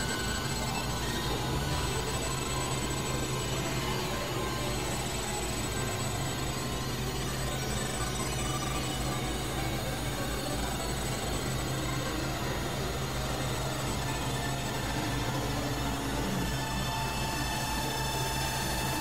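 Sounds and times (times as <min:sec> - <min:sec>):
synthesizer noise drone: 0:00.0 - 0:19.0.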